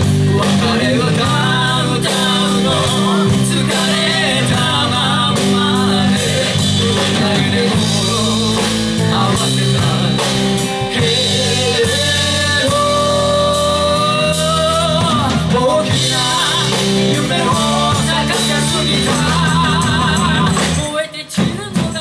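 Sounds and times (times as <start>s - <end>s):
drum kit beat: 0.0s - 22.0s
electric guitars: 0.0s - 22.0s
person singing: 0.0s - 22.0s.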